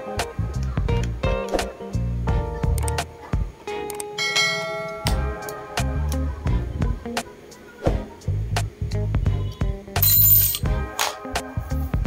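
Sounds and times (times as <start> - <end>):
bell chime: 4.2 - 5.7.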